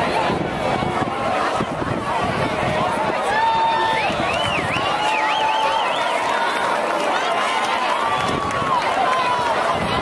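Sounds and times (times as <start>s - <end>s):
crowd talking: 0.0s - 10.0s.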